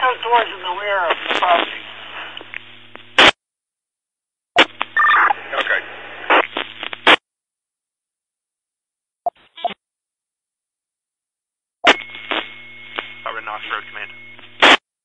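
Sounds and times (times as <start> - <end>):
radio squelch burst: 3.2 - 3.4, 4.6 - 7.2, 11.9 - 14.8
two-way radio transmission hum: 4.7 - 7.2, 11.9 - 14.8.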